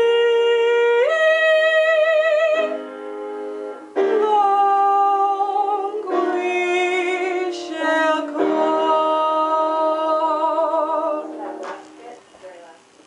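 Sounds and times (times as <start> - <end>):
woman singing unaccompanied: 0.0 - 3.0, 4.0 - 12.9.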